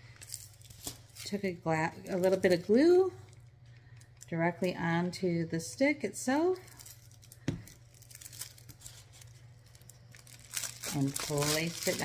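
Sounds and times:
foil tinsel crinkling: 0:00.0 - 0:03.2, 0:06.5 - 0:12.0.

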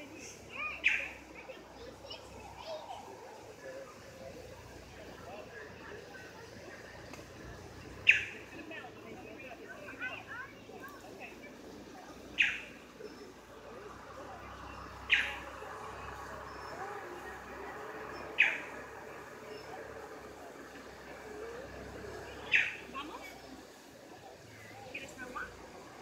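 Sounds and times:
murmur of people talking: 0:00.0 - 0:26.0.

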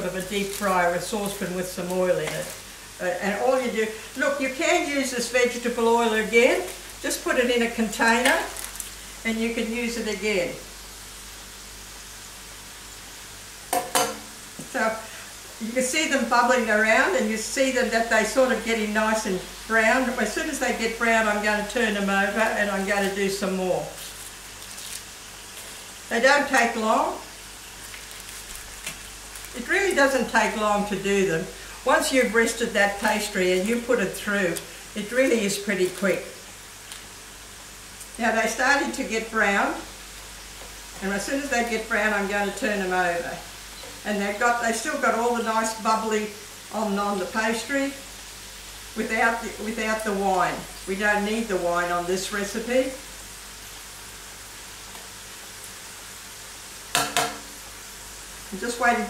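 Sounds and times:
pastry sizzling in hot oil: 0:00.0 - 0:59.0.

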